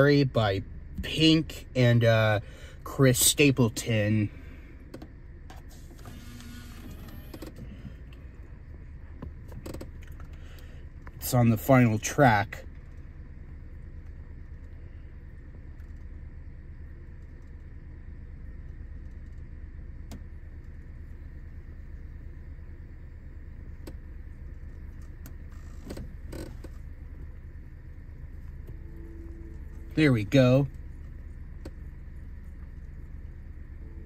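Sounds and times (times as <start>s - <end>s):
car cabin hum: 0.0s - 34.0s.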